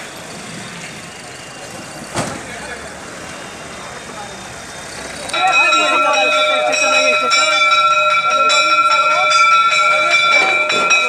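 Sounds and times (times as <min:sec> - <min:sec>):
continuous bell-like ringing: 0:00.0 - 0:11.0
people talking: 0:01.2 - 0:11.0.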